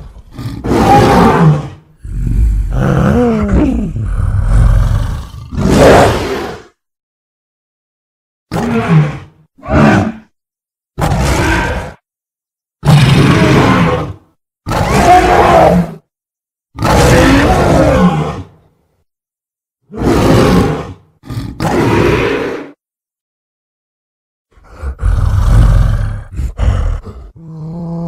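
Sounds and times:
giant ape monster roars: 0.0 - 6.8, 8.5 - 10.3, 11.0 - 12.0, 12.8 - 16.0, 16.8 - 18.6, 19.9 - 22.8, 24.5 - 28.0.

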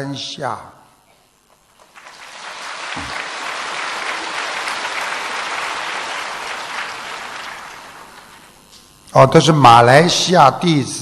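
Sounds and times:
large audience applauding: 1.6 - 8.7.

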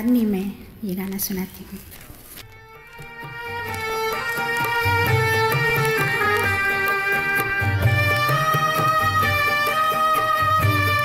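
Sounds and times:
held melody notes: 2.5 - 11.0.

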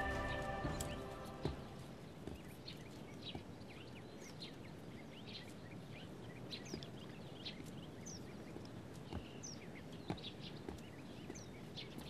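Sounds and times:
faint birds chirping: 0.0 - 12.0.

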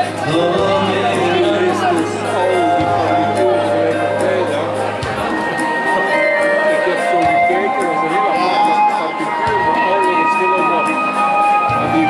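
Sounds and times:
electric guitar playing: 0.0 - 7.1
live band music: 0.0 - 12.0.

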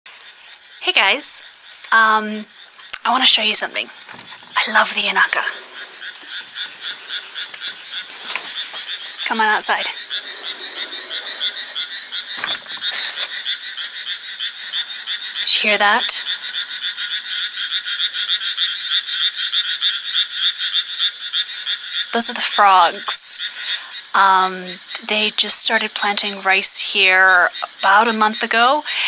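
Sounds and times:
small frogs croaking: 0.1 - 29.0.

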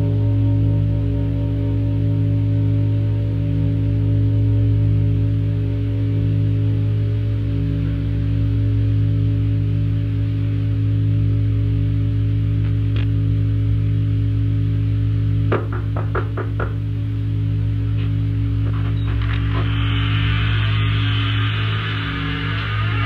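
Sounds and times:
ambient drone music: 0.0 - 23.0
hiss: 19.4 - 23.0.

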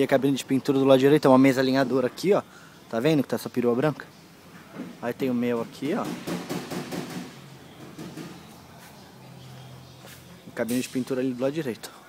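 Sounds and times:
quick sharp knocks: 6.0 - 7.4.

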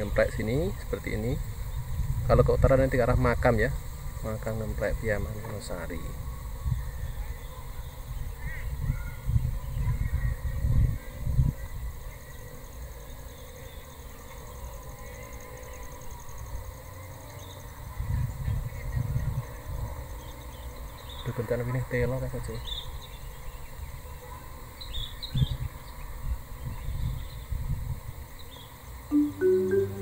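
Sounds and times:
wind gusting on microphone: 0.0 - 12.2, 17.9 - 20.2, 24.9 - 28.3.

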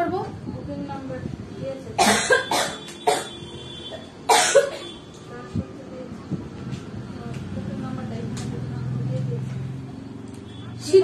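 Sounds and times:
person coughing: 2.0 - 3.4, 4.3 - 5.0.

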